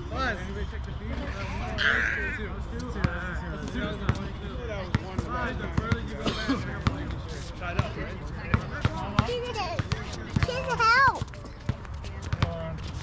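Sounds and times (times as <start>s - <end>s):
players' voices and calls: 0.0s - 13.0s
basketball bouncing on hard court: 7.8s - 12.7s.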